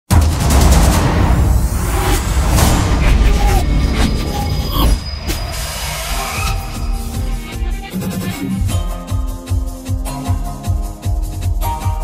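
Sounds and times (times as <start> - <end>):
sharp hit: 0.1 - 7.5
music with heavy low beat: 0.1 - 12.0.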